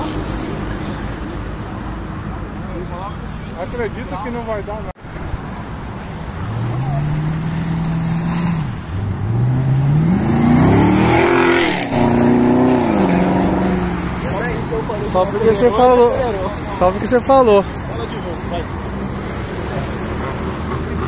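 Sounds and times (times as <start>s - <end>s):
car engine revving past: 6.4s - 14.6s.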